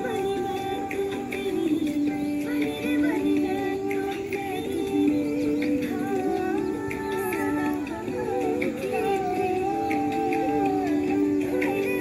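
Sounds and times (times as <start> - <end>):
gliding vocal melody: 0.0 - 12.0
steady held drone tones: 0.0 - 12.0.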